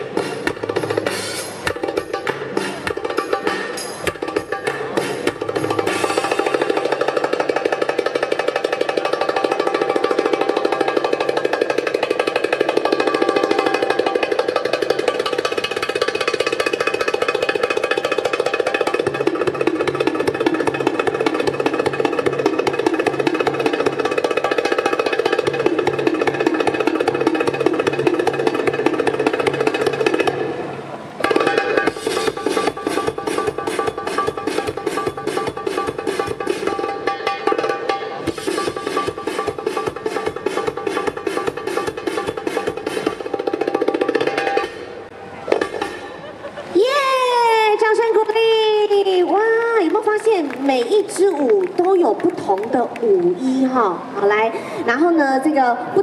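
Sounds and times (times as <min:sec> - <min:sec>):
belly dance music with drums: 0:00.0 - 0:30.6, 0:31.2 - 0:47.6.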